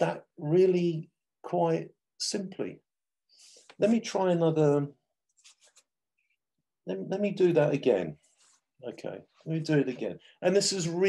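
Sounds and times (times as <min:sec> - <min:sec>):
brush scratching paint: 0:08.2 - 0:08.8.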